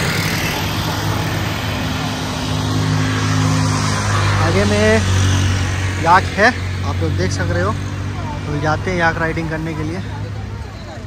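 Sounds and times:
road noise: 0:00.0 - 0:11.0
vehicle engines humming: 0:00.0 - 0:11.0.

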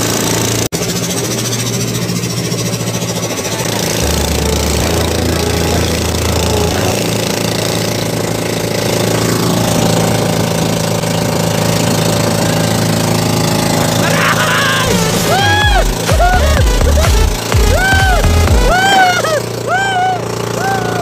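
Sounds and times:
boat engine running: 0:00.0 - 0:21.0
rushing noise: 0:13.0 - 0:19.4.

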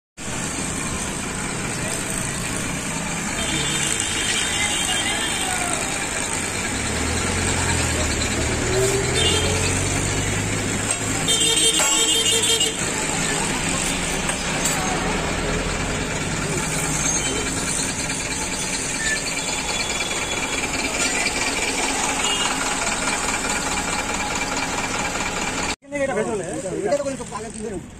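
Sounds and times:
car horn: 0:03.3 - 0:05.8, 0:08.8 - 0:09.9, 0:11.1 - 0:13.0, 0:21.9 - 0:23.0
vehicle engine passing: 0:05.6 - 0:11.3.

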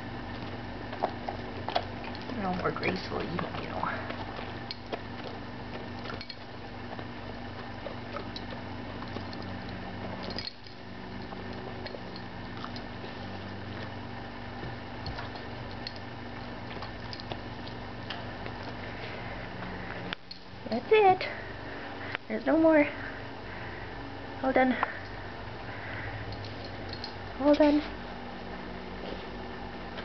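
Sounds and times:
low background hum: 0:00.0 - 0:30.0
dog licking and nibbling: 0:00.3 - 0:14.0, 0:14.6 - 0:19.7.

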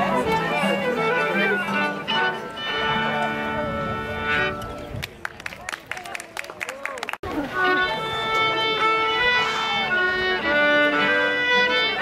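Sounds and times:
fiddles and guitar playing chord: 0:00.0 - 0:04.8, 0:07.3 - 0:12.0
audience clapping: 0:04.9 - 0:07.3.

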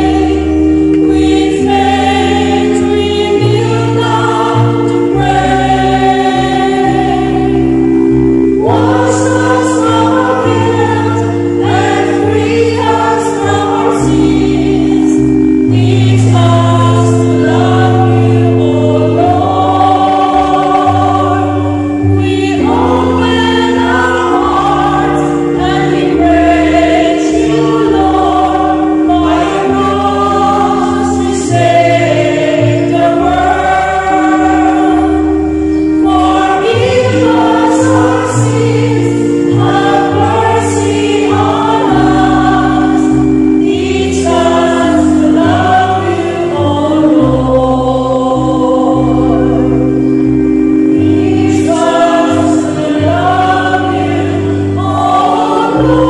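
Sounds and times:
choir singing a hymn: 0:00.0 - 0:56.0
sustained accompaniment chords: 0:00.0 - 0:56.0.

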